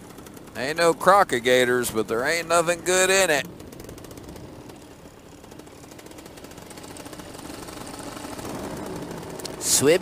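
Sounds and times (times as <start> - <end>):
paramotor engine buzzing: 2.0 - 10.0.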